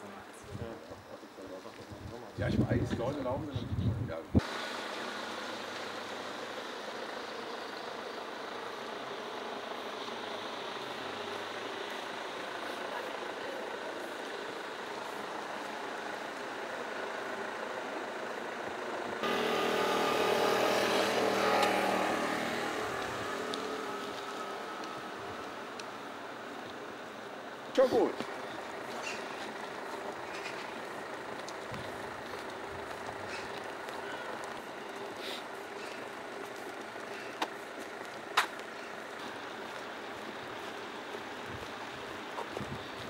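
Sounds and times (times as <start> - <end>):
road traffic noise: 0.0 - 43.0
vehicle passing close by: 19.2 - 26.1.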